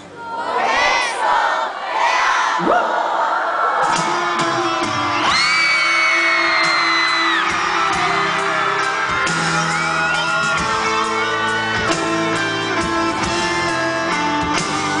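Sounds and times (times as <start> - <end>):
audience cheering and whooping: 2.6 - 13.6
live pop band playing ballad: 3.9 - 15.0.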